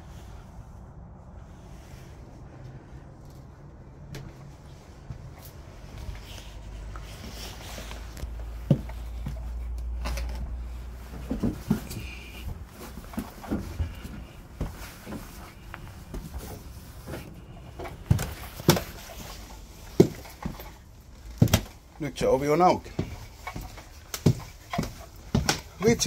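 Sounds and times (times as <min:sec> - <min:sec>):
low rumble: 0:00.0 - 0:14.8
footsteps on wooden floorboards: 0:04.0 - 0:26.0.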